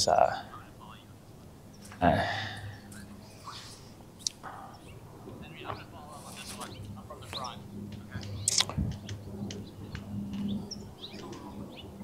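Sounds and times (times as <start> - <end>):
birds chirping: 0.0 - 12.0
steady low hum: 0.0 - 12.0.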